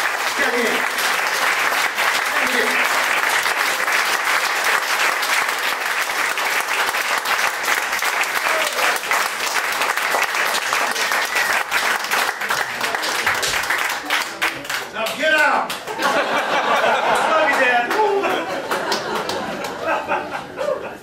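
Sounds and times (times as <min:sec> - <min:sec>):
audience applauding: 0:00.0 - 0:20.1.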